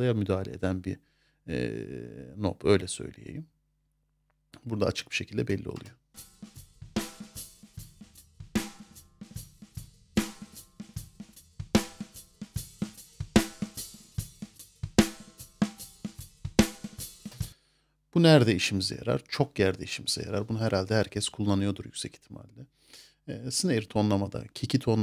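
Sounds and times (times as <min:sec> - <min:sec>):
kick and snare drum loop: 0:06.2 - 0:17.6.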